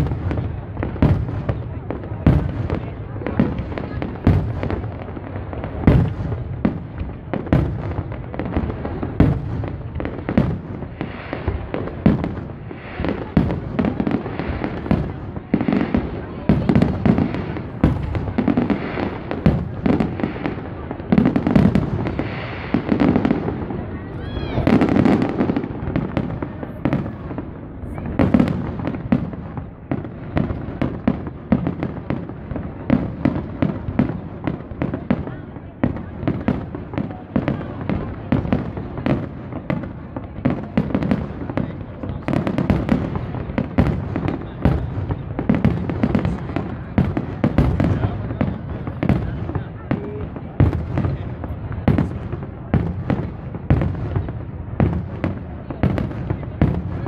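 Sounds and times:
crowd chatter: 0:00.0 - 0:57.0
fireworks bangs and crackles: 0:00.0 - 0:57.0.

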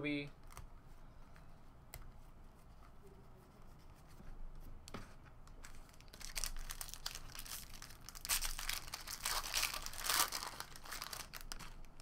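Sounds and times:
foil wrapper crinkling: 0:05.6 - 0:12.0.

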